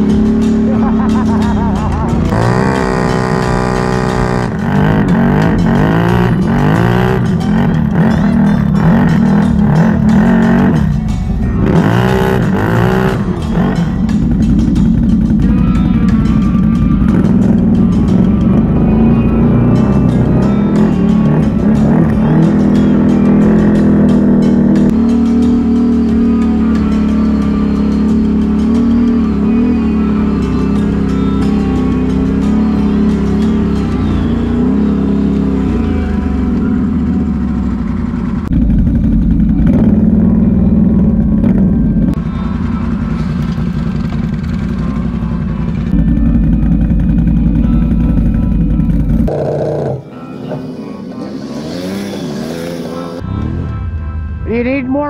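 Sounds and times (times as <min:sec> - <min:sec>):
atv engines revving: 0:00.0 - 0:55.0
background music: 0:00.0 - 0:55.0.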